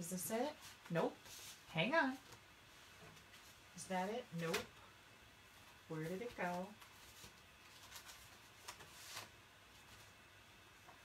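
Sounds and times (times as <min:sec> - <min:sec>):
paper and card rustling: 0:06.0 - 0:10.2.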